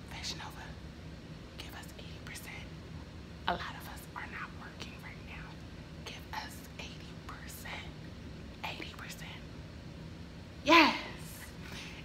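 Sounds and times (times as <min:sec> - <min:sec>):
woman whispering: 0:00.0 - 0:00.8, 0:01.6 - 0:02.8, 0:03.5 - 0:08.0, 0:08.6 - 0:09.5
faint low hum: 0:00.0 - 0:12.0.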